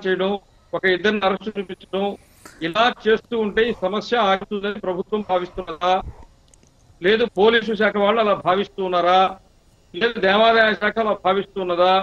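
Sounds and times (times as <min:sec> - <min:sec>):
man talking: 0:00.0 - 0:06.2, 0:07.0 - 0:09.4, 0:10.0 - 0:12.0.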